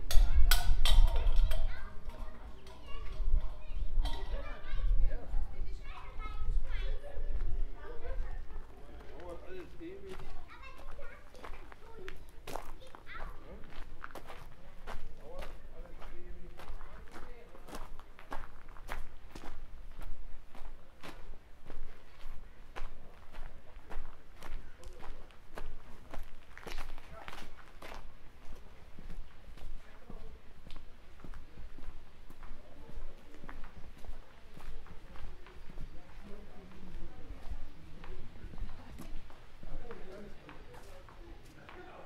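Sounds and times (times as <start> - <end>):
voices: 0.0 - 13.8, 32.4 - 42.0
footsteps on gravel: 7.3 - 42.0.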